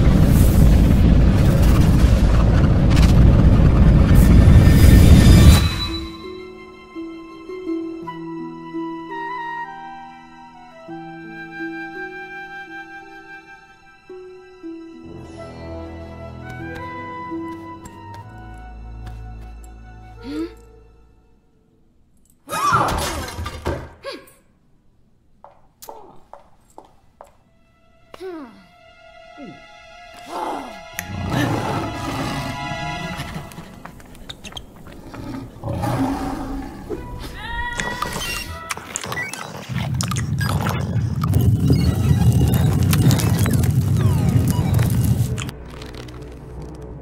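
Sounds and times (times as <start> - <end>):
low rumble with rapid knocks: 0.0 - 5.4
music: 4.7 - 22.3, 27.0 - 40.2, 41.2 - 47.0.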